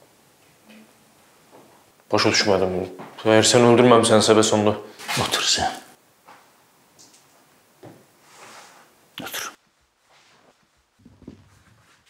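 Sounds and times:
clothing rustling: 0:09.6 - 0:12.0
soft body movements: 0:09.6 - 0:12.0
low bumps: 0:10.8 - 0:12.0.

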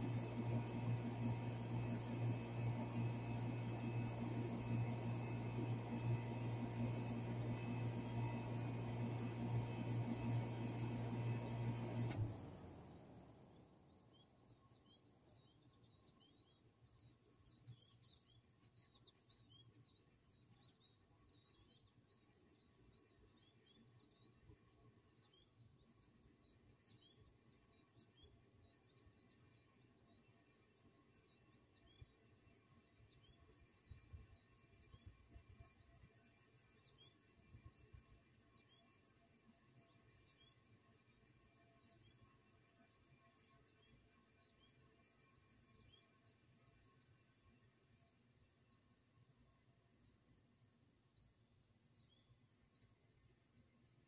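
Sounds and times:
faint bird chirps: 0:12.4 - 0:54.0.

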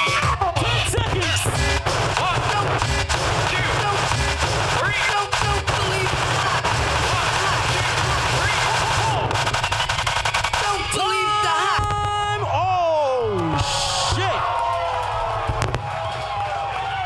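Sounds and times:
record scratching: 0:00.0 - 0:12.4
heavy bass beat: 0:00.0 - 0:14.4.

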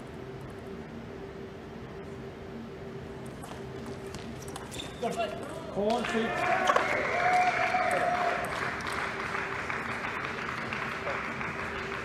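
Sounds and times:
audience clapping: 0:05.9 - 0:12.0.

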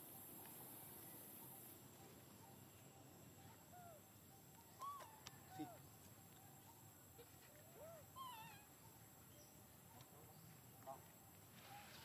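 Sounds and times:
baby monkey calling: 0:04.7 - 0:05.8, 0:07.2 - 0:08.8.

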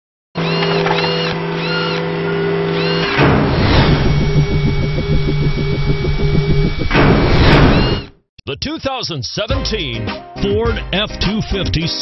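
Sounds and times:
whoosh: 0:03.3 - 0:08.1
rhythmic pulsing beat: 0:04.0 - 0:07.2.

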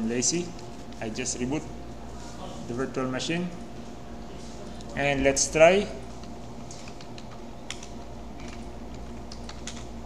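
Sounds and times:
computer keyboard typing: 0:06.8 - 0:09.9.

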